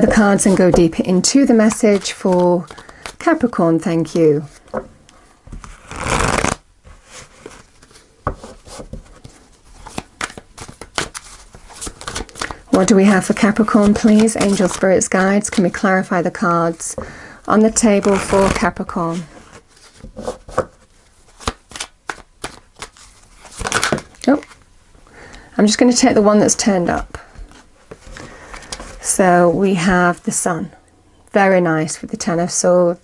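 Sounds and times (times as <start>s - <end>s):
cards being shuffled: 0.0s - 3.5s, 5.5s - 15.7s, 17.7s - 20.7s, 21.3s - 24.6s.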